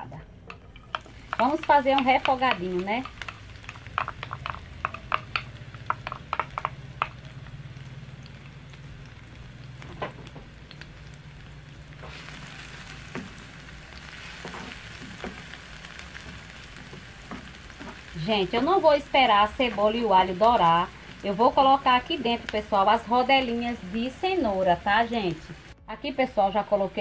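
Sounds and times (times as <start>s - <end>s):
onion and garlic frying in oil: 0.0s - 25.8s
wooden spoon tapping and scraping: 0.4s - 7.4s, 14.2s - 18.6s.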